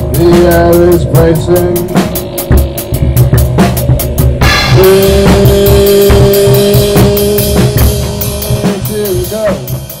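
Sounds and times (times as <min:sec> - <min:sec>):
synthesizer bending tone: 0:00.0 - 0:09.4
bass guitar line: 0:00.0 - 0:10.0
drum kit strokes: 0:00.0 - 0:10.0.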